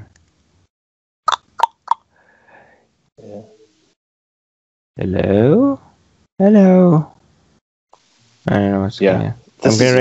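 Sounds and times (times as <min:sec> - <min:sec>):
chopped voice over video call: 0:09.0 - 0:10.0.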